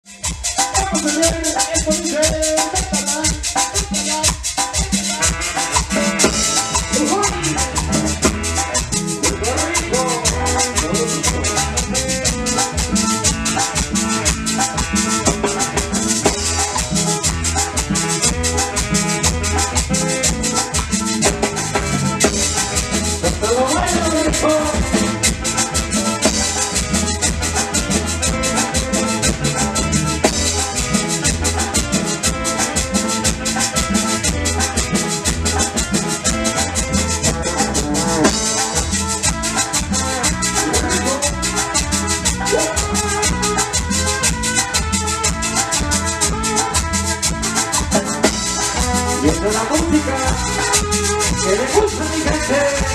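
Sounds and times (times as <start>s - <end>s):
electric guitar: 0.0s - 52.9s
electronic keyboard melody: 0.0s - 52.9s.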